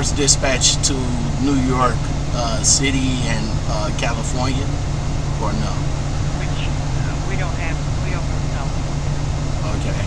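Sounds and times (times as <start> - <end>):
even hiss: 0.0 - 4.7
faint speech: 0.0 - 4.7, 5.4 - 10.0
steady low hum: 0.0 - 10.0.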